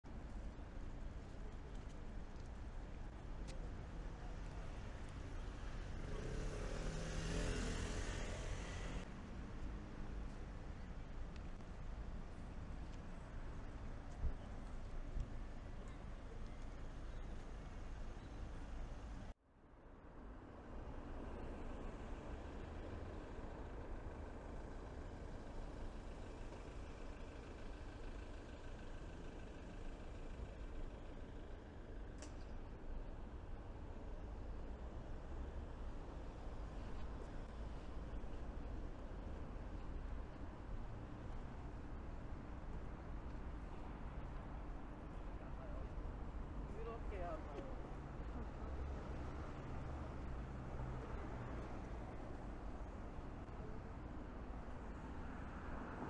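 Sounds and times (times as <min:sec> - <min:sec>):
city road traffic: 0:00.0 - 0:56.0
street noise hum: 0:00.0 - 0:56.0
vehicle engine passing: 0:05.7 - 0:10.3.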